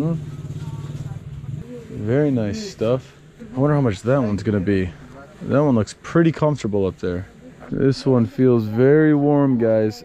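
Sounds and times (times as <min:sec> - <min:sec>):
engine idling: 0:00.0 - 0:05.9.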